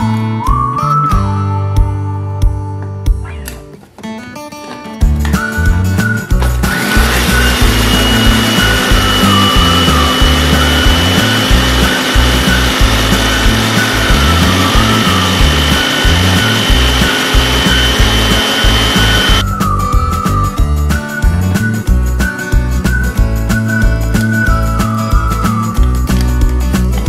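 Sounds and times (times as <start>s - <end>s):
background music: 0.0s - 27.0s
food chopper motor whining: 5.3s - 19.4s.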